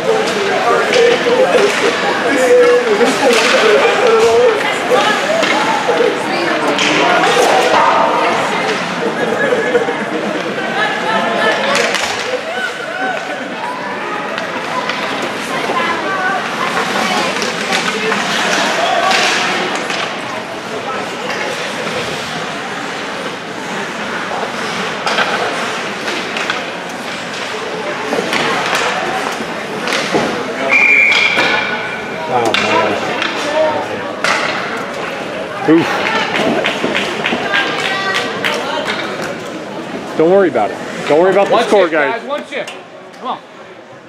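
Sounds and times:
hockey sticks and puck clacking: 0.0 - 8.9, 11.4 - 40.1
voices and shouts: 0.0 - 20.2
referee's whistle blast: 30.7 - 31.4.

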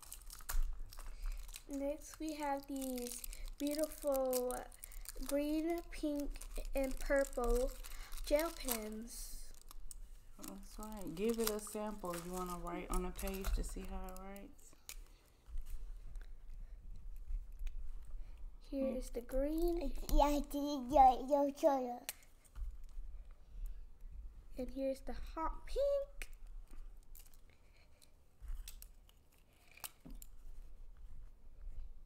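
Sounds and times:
person speaking: 1.6 - 9.6, 10.4 - 14.8, 18.6 - 22.1
pen bumping and rustling on paper: 10.6 - 14.1.

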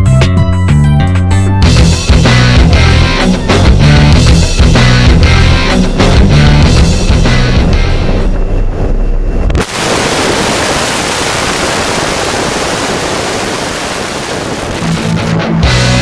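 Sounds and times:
rock music with electric guitar: 0.0 - 8.4, 12.7 - 16.0
aircraft noise: 2.2 - 16.0
rush of wind: 5.1 - 15.6.

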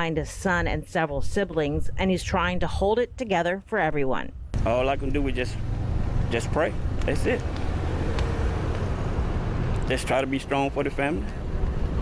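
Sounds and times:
low outdoor rumble: 4.3 - 12.0.

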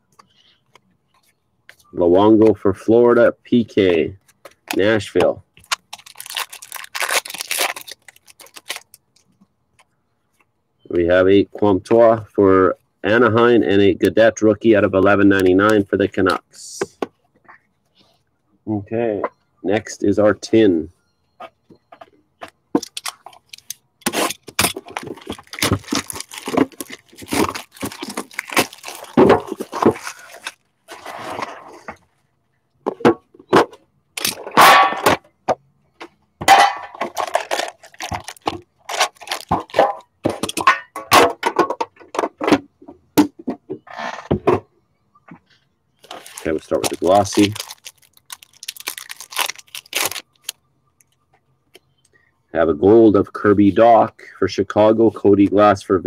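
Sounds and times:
plastic wrap crinkling and tearing: 5.6 - 9.0, 22.9 - 30.7, 37.2 - 39.8, 46.0 - 50.6.

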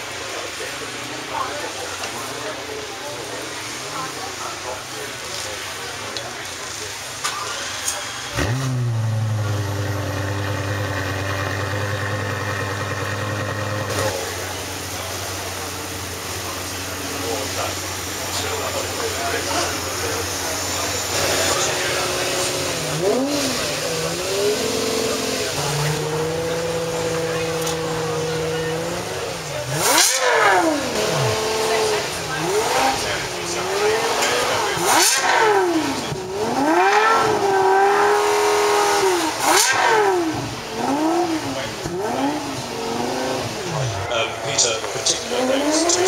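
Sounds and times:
car engine idling and revving: 0.0 - 46.0.

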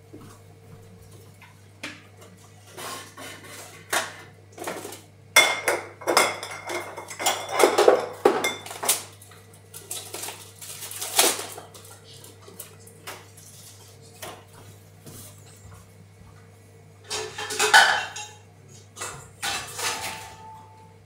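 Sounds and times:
crockery and cutlery clinking: 2.8 - 9.2, 17.0 - 20.9.

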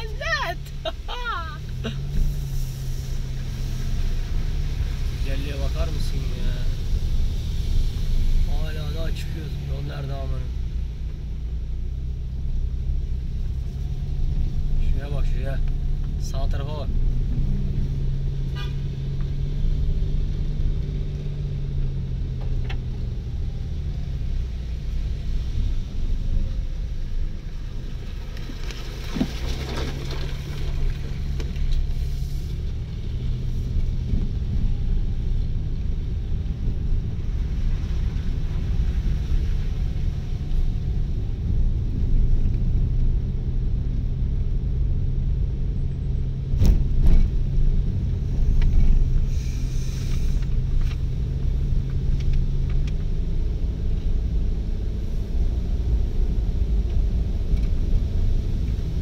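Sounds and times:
car engine running: 0.0 - 59.0
tyres rumbling on dirt road: 0.0 - 59.0.

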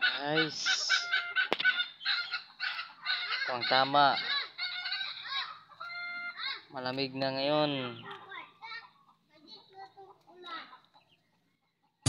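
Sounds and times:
poultry calling: 0.0 - 12.0.

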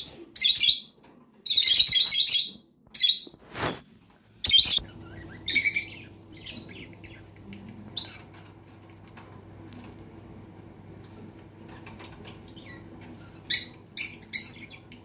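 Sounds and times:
faint low hum: 4.0 - 15.0
small birds chirping: 4.4 - 8.6, 11.6 - 15.0.

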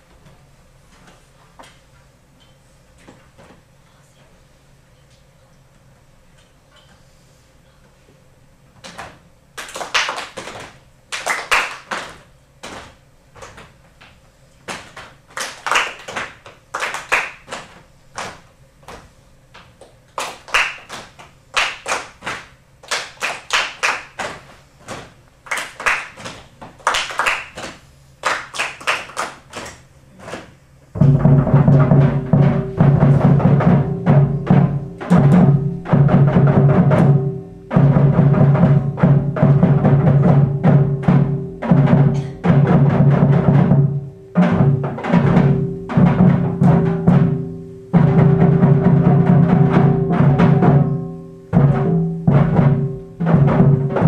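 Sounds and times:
children's drum ensemble: 8.8 - 13.8, 14.7 - 54.0.

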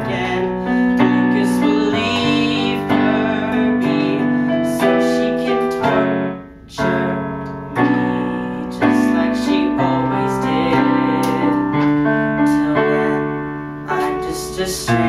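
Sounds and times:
piano chords: 0.0 - 15.0.

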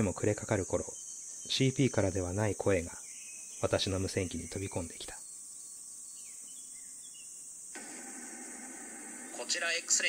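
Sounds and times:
faint static hiss: 0.0 - 10.0
insects chirring: 0.0 - 10.0.

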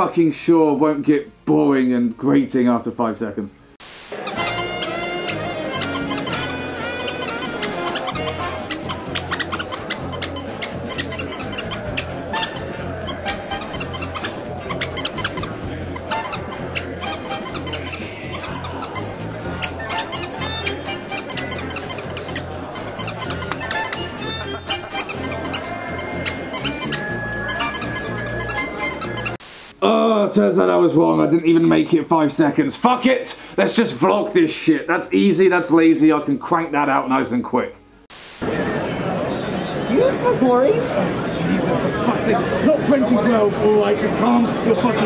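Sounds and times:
squeaker toy squeaking: 4.2 - 29.4.

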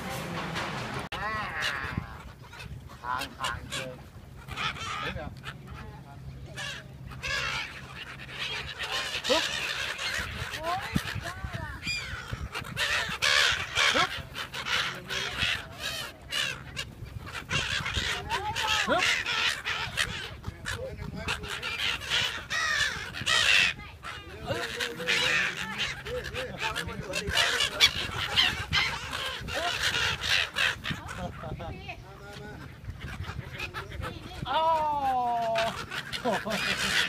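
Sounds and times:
gulls calling: 0.0 - 37.0.

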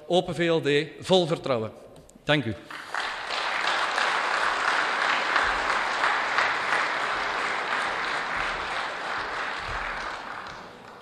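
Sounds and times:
audience applauding: 2.7 - 11.0.

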